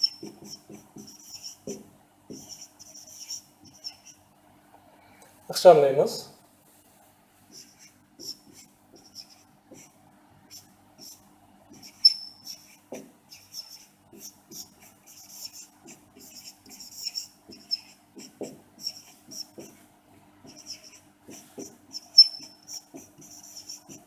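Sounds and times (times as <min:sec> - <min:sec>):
marker scratching on whiteboard: 0:00.0 - 0:04.2, 0:07.5 - 0:24.0
marker squeak: 0:00.0 - 0:04.2, 0:11.8 - 0:19.7, 0:20.5 - 0:24.0.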